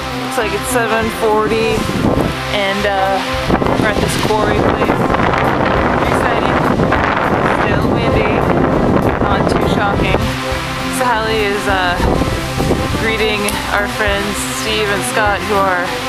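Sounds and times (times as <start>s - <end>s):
background music: 0.0s - 16.0s
wind buffeting microphone: 0.0s - 16.0s
person speaking: 0.2s - 6.8s, 7.4s - 8.5s, 9.2s - 12.2s, 12.9s - 16.0s.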